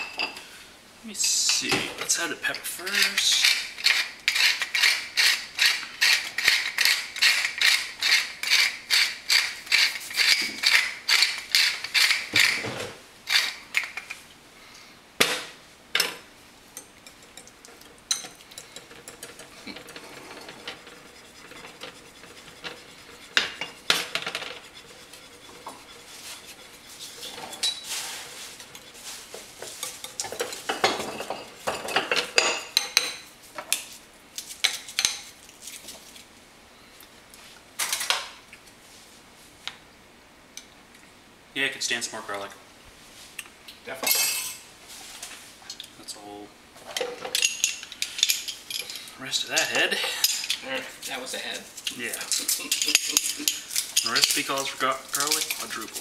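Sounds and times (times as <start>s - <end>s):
pepper mill grinding: 2.2s - 12.6s, 13.2s - 14.2s, 51.8s - 56.0s
spoon scraping ceramic bowl: 18.1s - 30.8s
whisk in ceramic bowl: 20.2s - 30.8s.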